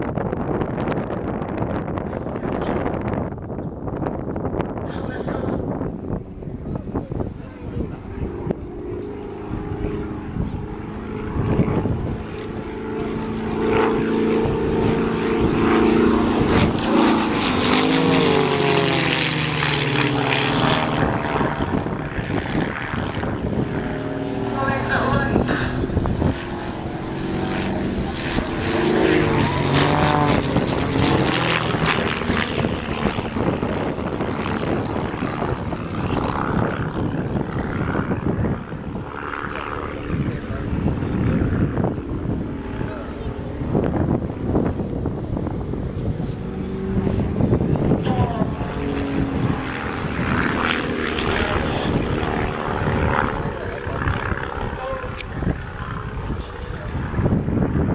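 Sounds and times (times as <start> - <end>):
propeller aircraft engines: 0.0 - 57.9.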